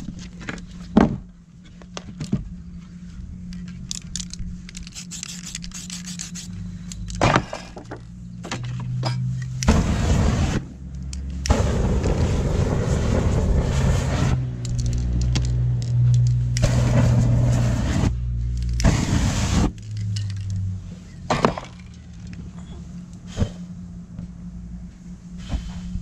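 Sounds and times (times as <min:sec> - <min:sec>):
low steady hum: 0:00.0 - 0:26.0
hiss of burning spray: 0:11.5 - 0:14.4, 0:16.6 - 0:18.1, 0:18.8 - 0:19.7.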